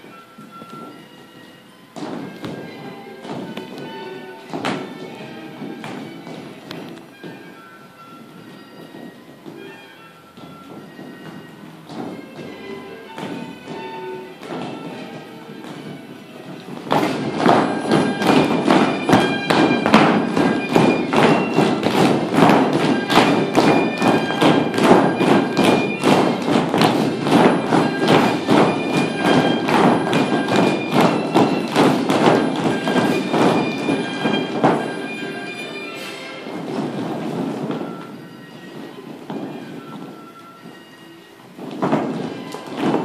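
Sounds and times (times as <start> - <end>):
recorded music: 0.0 - 43.0
shoes stamping on floor: 0.0 - 43.0.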